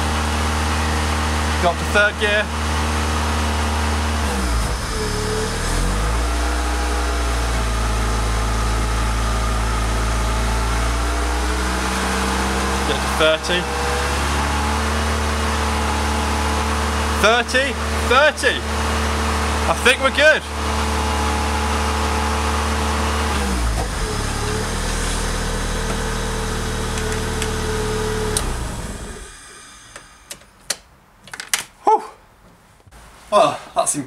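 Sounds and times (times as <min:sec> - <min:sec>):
car engine running: 0:00.0 - 0:30.3.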